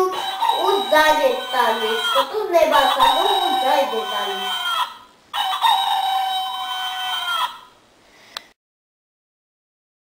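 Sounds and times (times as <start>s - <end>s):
rooster crowing: 0.1s - 7.8s.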